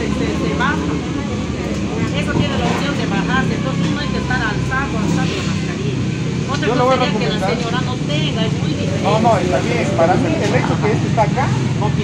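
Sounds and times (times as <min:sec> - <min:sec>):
people talking: 0:00.0 - 0:12.0
street traffic hum: 0:00.0 - 0:12.0.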